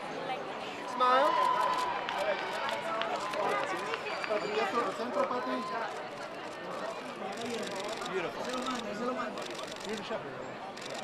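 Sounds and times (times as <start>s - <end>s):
crowd chatter and calling out: 0.0s - 11.0s.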